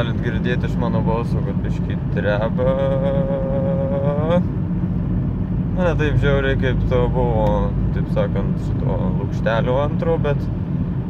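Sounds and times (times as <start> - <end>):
road and engine drone: 0.0 - 11.0.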